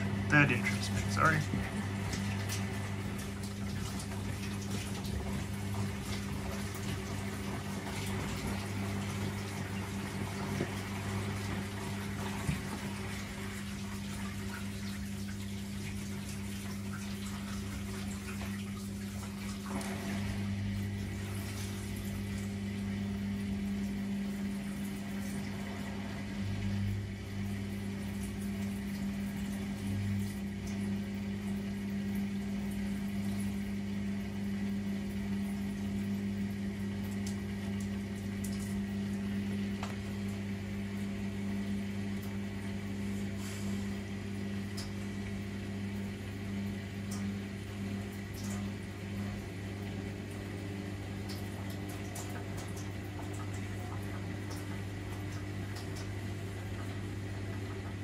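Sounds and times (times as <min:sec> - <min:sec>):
washing machine low hum: 0:00.0 - 0:58.0
water sloshing in washing machine: 0:00.0 - 0:58.0.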